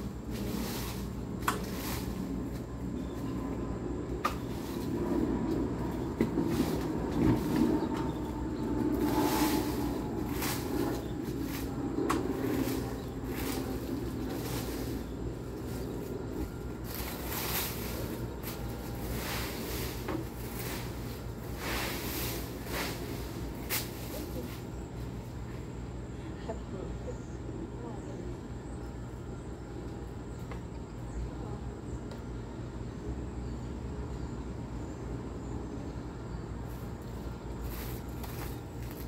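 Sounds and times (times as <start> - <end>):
rake scraping dry leaves: 0.0 - 3.6, 4.2 - 25.4, 36.7 - 39.0
steady low hum: 0.0 - 39.0.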